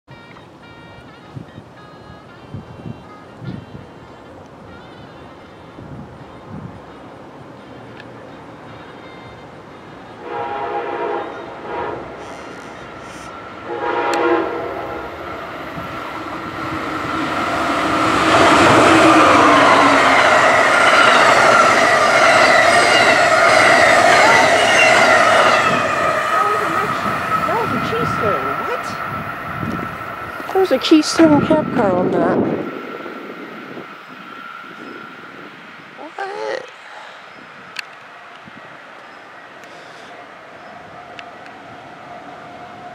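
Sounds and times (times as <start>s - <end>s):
train horn blasts: 0.1s - 35.6s
train passing with rail noise: 0.1s - 42.9s.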